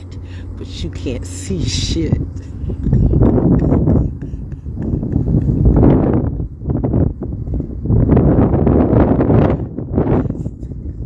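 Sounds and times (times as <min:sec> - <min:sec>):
wind gusting on microphone: 0:00.0 - 0:11.0.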